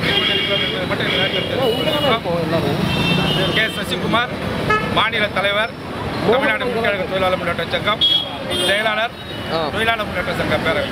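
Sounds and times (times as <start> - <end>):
man speaking: 0.0 - 10.9
road traffic: 0.0 - 10.9.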